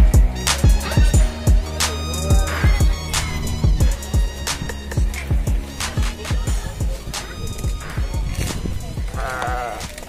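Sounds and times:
background music with low beat: 0.0 - 10.0
sheep bleating: 9.1 - 10.0.

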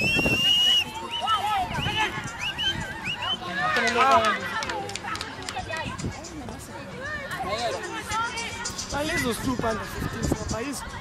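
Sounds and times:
voices shouting and calling out: 0.0 - 11.0.

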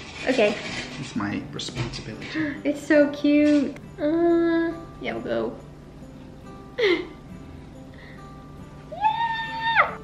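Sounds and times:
faint background music: 0.0 - 10.0
woman squealing: 8.9 - 10.0.

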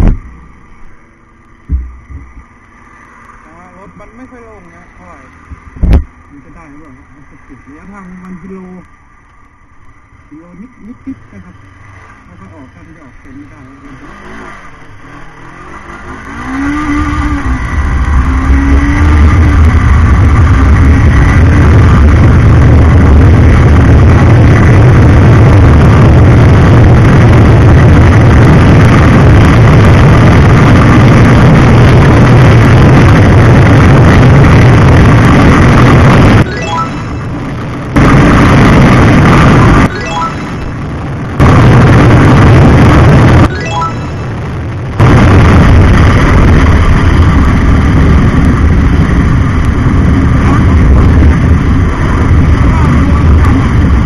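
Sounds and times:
wind noise on camera: 0.0 - 0.7, 1.4 - 2.6, 5.4 - 6.2, 14.1 - 54.0
motorcycle engine at full throttle: 0.0 - 54.0.

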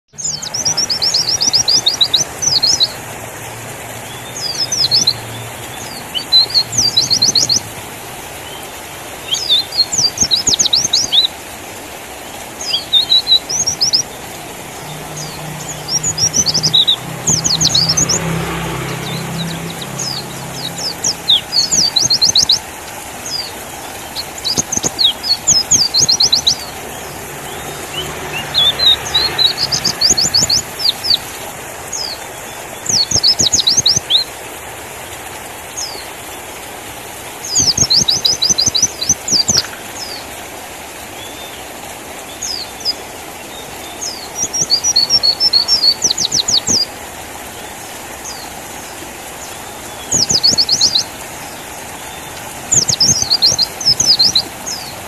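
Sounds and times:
bird high rapid twittering: 0.1 - 7.7, 8.3 - 11.4, 12.2 - 34.3, 37.4 - 40.2, 43.8 - 46.9, 47.5 - 55.0.

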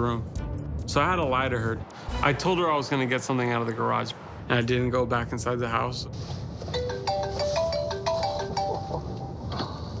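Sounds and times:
mobile phone ringtone: 6.8 - 9.4.

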